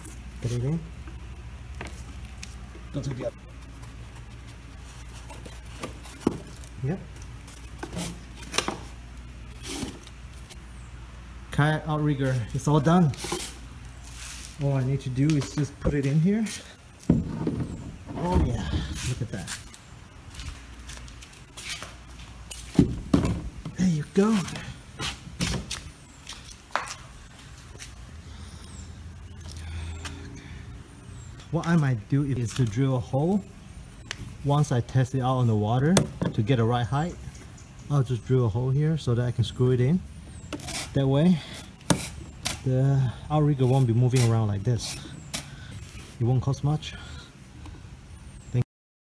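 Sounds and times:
steady low hum: 0.0s - 48.6s.

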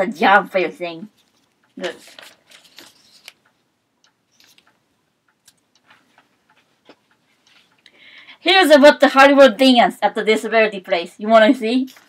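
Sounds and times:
faint clicks: 1.2s - 8.0s.

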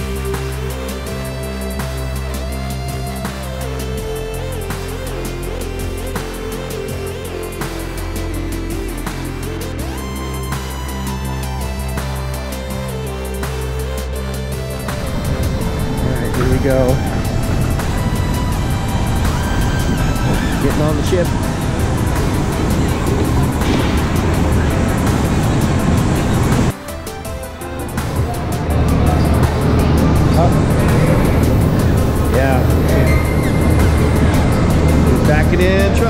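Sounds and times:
background music: 0.0s - 36.0s
distant voices: 0.0s - 36.0s
vehicle noise: 0.0s - 36.0s.

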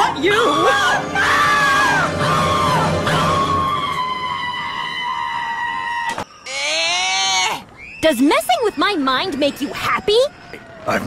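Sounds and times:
high-pitched scream: 0.0s - 10.9s.

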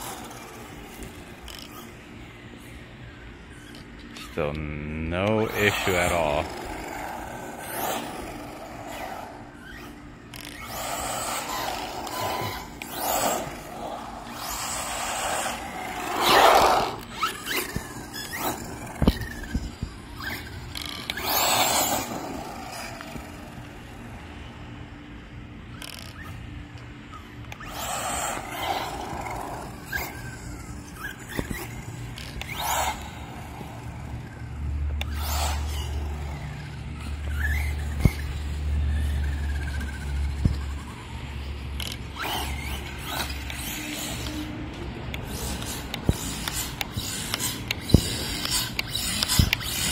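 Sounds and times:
electric motor whining: 3.4s - 24.2s, 25.7s - 49.9s
tyres squealing and scraping: 5.3s - 23.4s, 35.0s - 41.2s.

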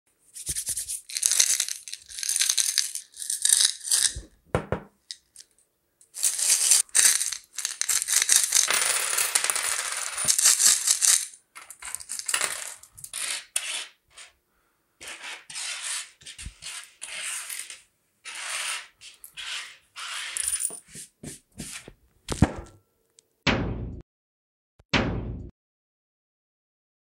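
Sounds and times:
coins jingling in a bottle: 1.1s - 4.2s, 6.1s - 13.2s, 20.3s - 20.8s
coins clinking on a tabletop: 1.1s - 4.3s, 6.1s - 14.3s, 16.6s - 21.0s
coins rattling onto a wooden table: 1.1s - 4.3s, 6.1s - 13.9s, 17.1s - 21.0s.

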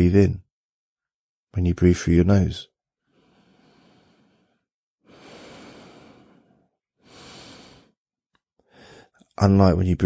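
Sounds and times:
man breathing: 3.0s - 8.0s, 8.6s - 9.2s.

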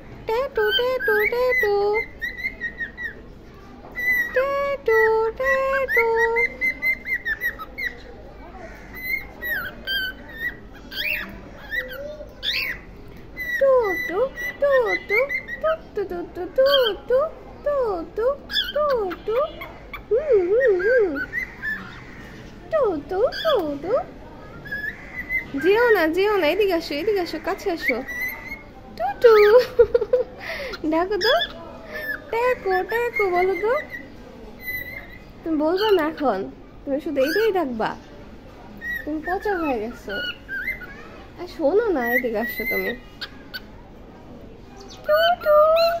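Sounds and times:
cockatiel warbling and whistling: 0.7s - 3.2s, 3.9s - 4.4s, 9.0s - 12.8s, 38.8s - 41.0s.

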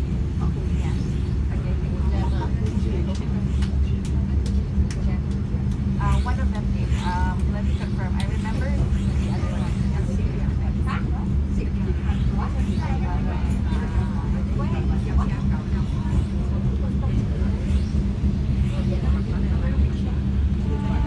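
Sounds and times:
passengers chattering: 0.0s - 21.0s
train rumble: 0.0s - 21.0s.

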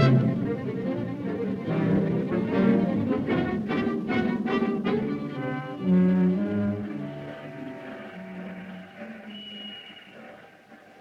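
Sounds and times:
orchestral strings sustained notes: 0.0s - 11.0s.

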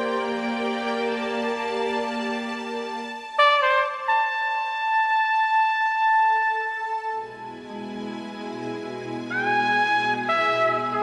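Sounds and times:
trumpet playing: 3.4s - 7.5s, 9.3s - 11.0s.

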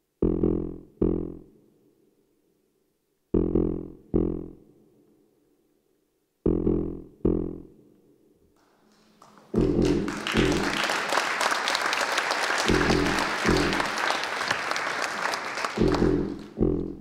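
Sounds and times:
audience applauding: 8.6s - 16.6s.

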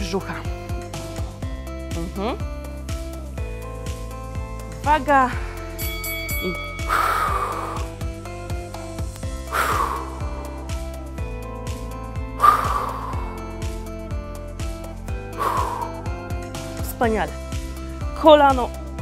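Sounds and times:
workout music with steady beat: 0.0s - 19.0s
woman exhaling forcefully: 9.5s - 10.6s, 12.4s - 13.4s, 15.4s - 16.1s.

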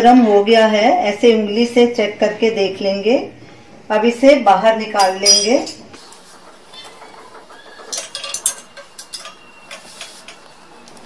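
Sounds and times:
metal pot clinking: 7.9s - 9.9s.

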